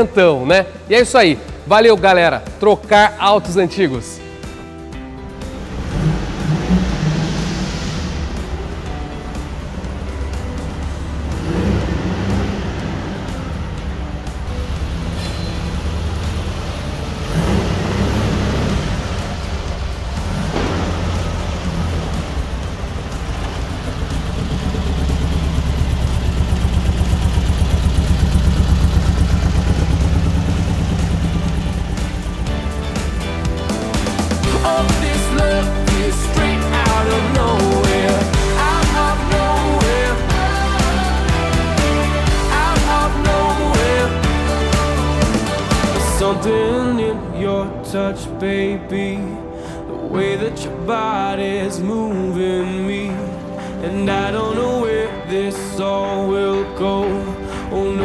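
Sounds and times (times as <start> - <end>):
music: 0.0 - 58.0
car engine revving: 4.2 - 48.4.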